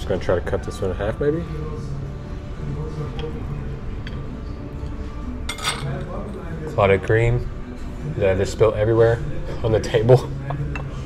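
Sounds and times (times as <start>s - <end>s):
knife clinking and scraping plate: 5.5s - 6.1s.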